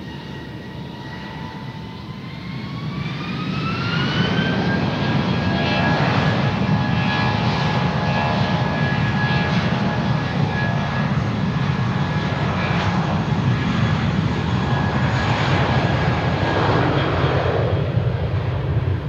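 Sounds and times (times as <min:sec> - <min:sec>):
jet engines roaring at takeoff: 0:00.0 - 0:19.0.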